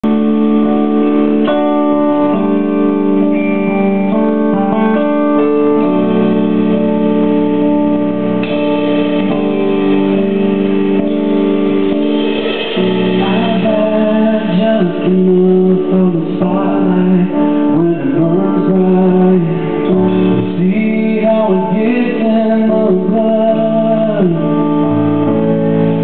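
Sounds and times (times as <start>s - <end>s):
keyboard playing organ-like chords: 0.0s - 26.0s.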